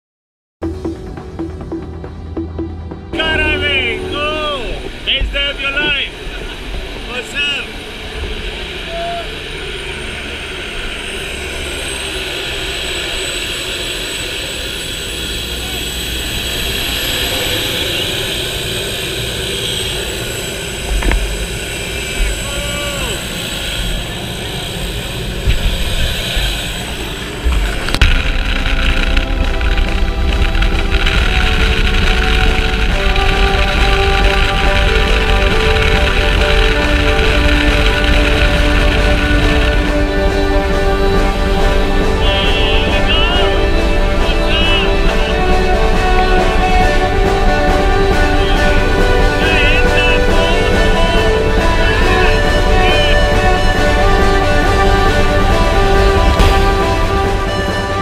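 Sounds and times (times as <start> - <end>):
background music sustained notes: 0.6 - 58.0
propeller plane engine running: 0.6 - 58.0.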